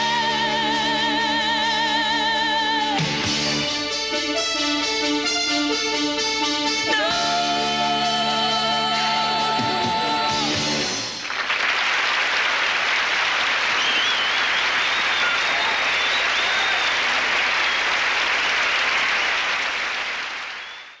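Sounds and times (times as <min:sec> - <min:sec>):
audience applauding: 0:10.4 - 0:21.0.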